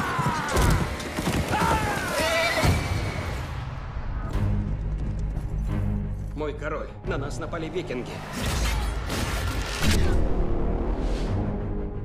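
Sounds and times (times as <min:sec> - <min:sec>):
galloping hoofbeats: 0:00.0 - 0:02.6
horses whinnying: 0:00.0 - 0:03.0.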